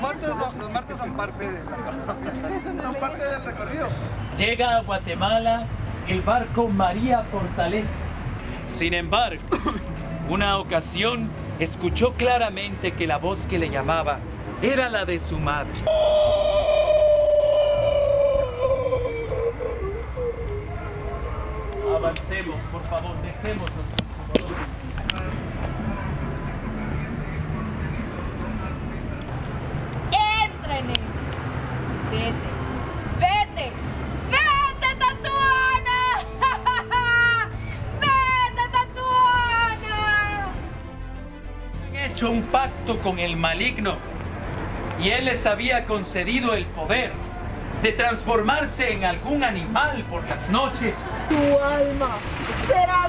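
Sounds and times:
background music: 0.0 - 53.0
person wailing a long note: 15.9 - 22.1.

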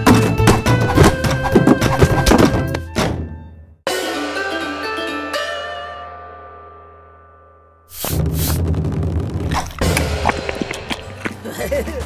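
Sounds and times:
cartoon music with steady bass: 0.0 - 5.8.

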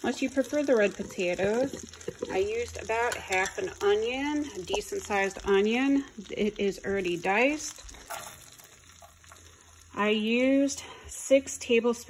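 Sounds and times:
butter sizzling in a frying pan: 0.0 - 12.0.

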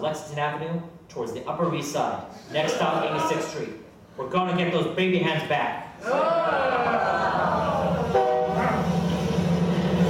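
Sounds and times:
train running rumble: 7.7 - 10.0
train horn: 8.0 - 8.9.

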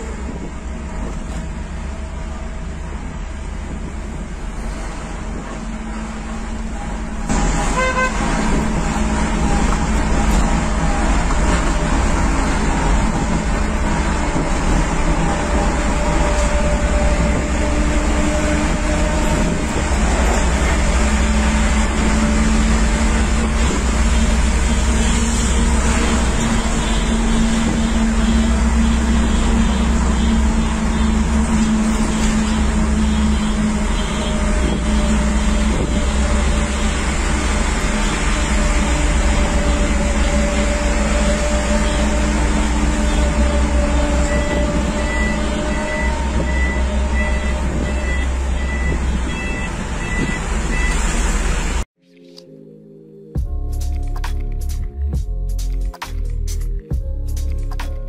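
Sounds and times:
low engine drone: 0.0 - 51.9
road noise inside car: 0.0 - 51.9.

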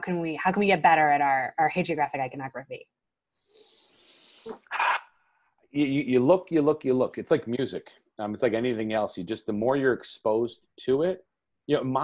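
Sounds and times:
man speaking: 5.8 - 12.0.

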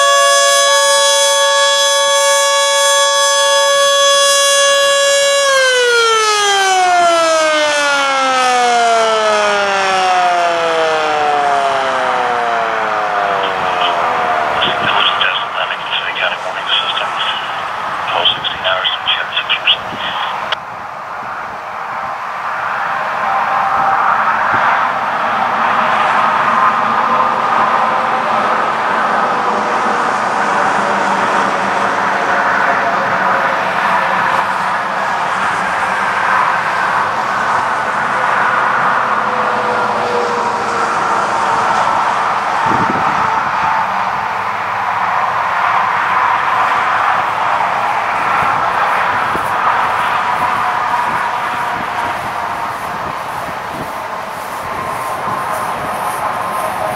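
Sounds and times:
warning siren wailing: 0.0 - 20.6, 22.8 - 56.9.

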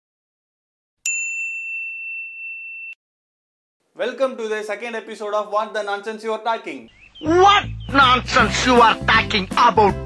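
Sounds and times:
notification bell ding: 1.1 - 3.0.

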